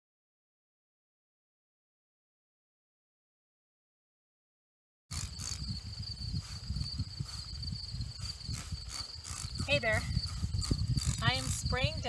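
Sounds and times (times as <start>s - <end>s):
crickets trilling: 5.1s - 12.0s
low rumble on microphone: 5.1s - 12.0s.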